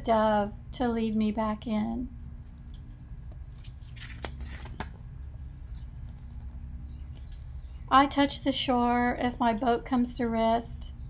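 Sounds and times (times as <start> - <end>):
book page turning: 2.6 - 6.6.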